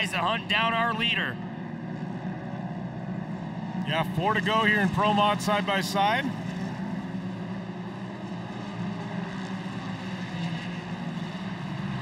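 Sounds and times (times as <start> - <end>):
commentator speaking: 0.0 - 1.4, 3.9 - 6.4
racing engines drone: 0.0 - 12.0.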